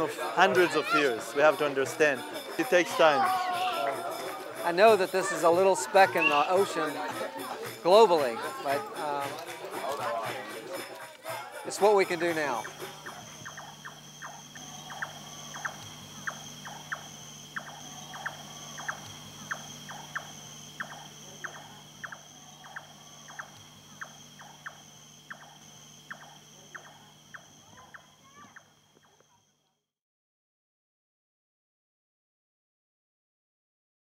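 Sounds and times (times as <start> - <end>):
steady high drone: 0.0 - 29.2
short chirping call: 6.1 - 6.6, 12.1 - 29.5.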